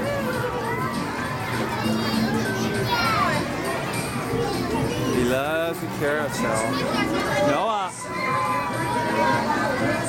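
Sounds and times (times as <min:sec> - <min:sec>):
young children's voices: 0:00.0 - 0:05.4, 0:06.3 - 0:10.0
general chatter: 0:00.0 - 0:10.0
music playing: 0:00.0 - 0:10.0.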